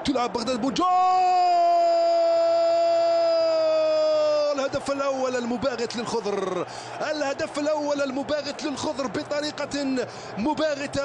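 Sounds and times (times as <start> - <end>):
man shouting goal cry: 0.0 - 5.3.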